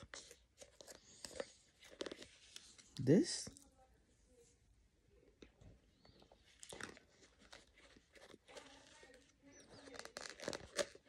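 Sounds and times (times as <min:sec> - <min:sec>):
crunching and chewing: 0:00.0 - 0:02.9, 0:05.4 - 0:11.0.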